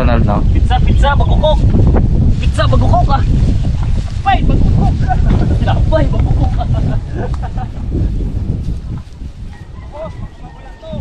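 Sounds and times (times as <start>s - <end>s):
wind buffeting microphone: 0.0s - 11.0s
faint chicken call: 9.5s - 11.0s.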